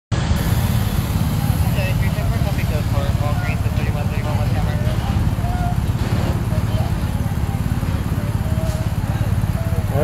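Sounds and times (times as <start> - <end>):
heavy traffic rumble: 0.1 - 10.0
trucks passing close by: 0.1 - 10.0
faint voices: 1.0 - 10.0.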